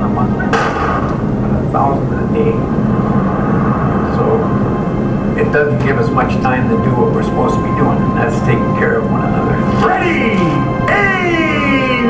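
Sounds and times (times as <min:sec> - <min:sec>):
low rumble from speakers: 0:00.0 - 0:12.0.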